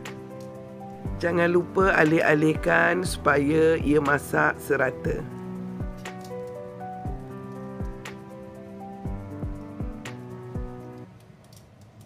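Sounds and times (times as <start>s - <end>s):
sustained keyboard notes: 0.1s - 11.1s
soft low drum beats: 7.1s - 8.2s.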